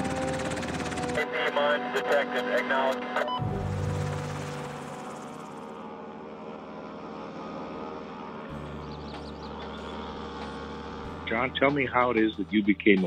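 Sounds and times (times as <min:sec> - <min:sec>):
propeller plane engine droning: 0:00.0 - 0:13.0.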